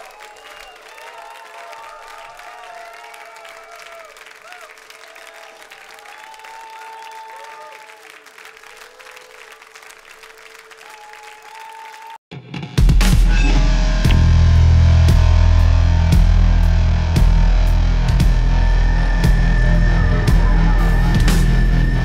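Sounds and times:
audience applause: 0:00.0 - 0:12.2
loud bass-heavy theme music: 0:12.3 - 0:22.0.

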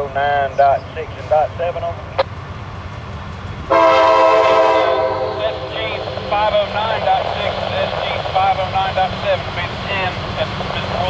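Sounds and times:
freight train rumble: 0:00.0 - 0:11.0
locomotive air horn chord: 0:03.7 - 0:06.1.

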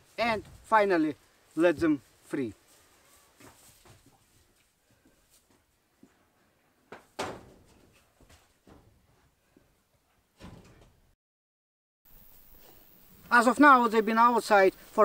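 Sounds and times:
barn door knocks and scrapes: 0:07.0 - 0:08.0, 0:10.4 - 0:11.1.

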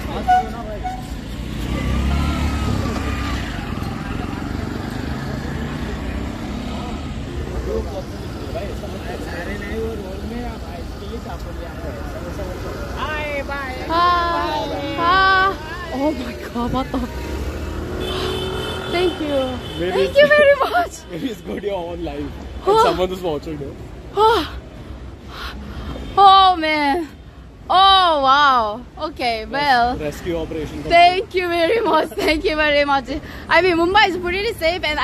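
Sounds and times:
low traffic rumble: 0:00.0 - 0:35.0.

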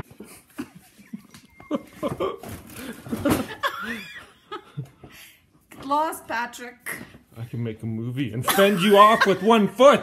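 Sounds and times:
person laughing: 0:00.1 - 0:04.9, 0:08.5 - 0:09.6.

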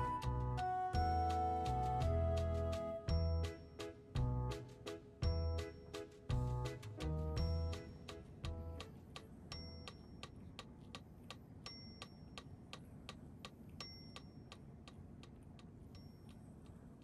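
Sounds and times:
melody notes: 0:00.0 - 0:04.6
clock-like ticking: 0:07.4 - 0:17.0.

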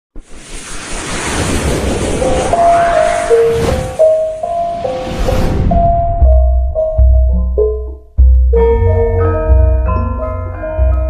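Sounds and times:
rushing whoosh: 0:00.2 - 0:06.8
deep rumble: 0:00.9 - 0:08.4.

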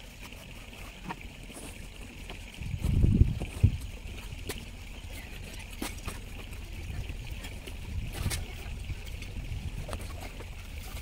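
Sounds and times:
wind buffeting microphone: 0:02.5 - 0:04.5, 0:06.7 - 0:10.9.

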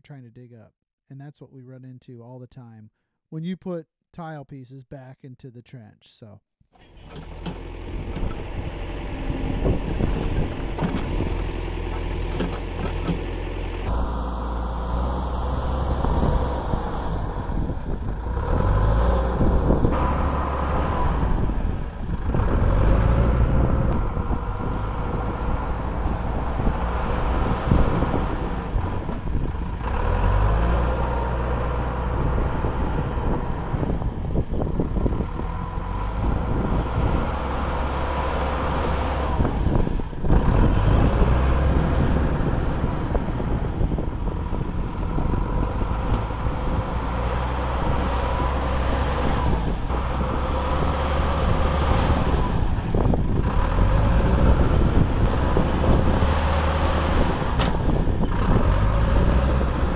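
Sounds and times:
backhoe diesel engine running: 0:06.8 - 0:59.9.

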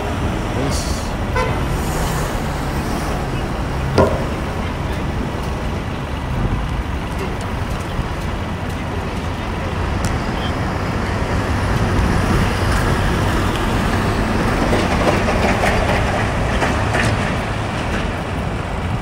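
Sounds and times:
rumble of passing vehicles: 0:00.0 - 0:19.0
sharp knock: 0:03.9 - 0:04.6.

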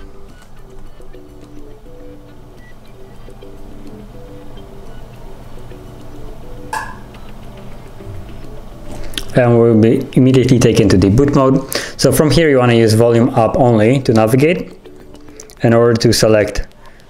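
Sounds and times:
soft melodic background music: 0:00.0 - 0:17.0.

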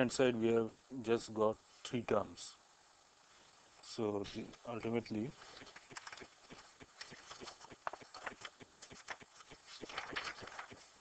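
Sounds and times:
light clicks of sheets: 0:05.4 - 0:10.9
plastic sheet crackling: 0:05.6 - 0:11.0.

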